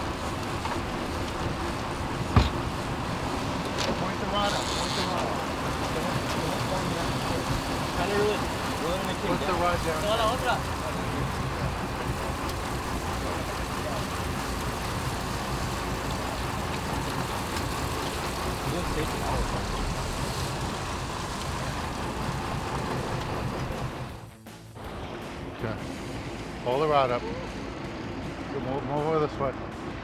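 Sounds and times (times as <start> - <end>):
water rushing past: 0.0 - 24.4
boat engine running: 0.0 - 30.0
wind: 0.0 - 30.0.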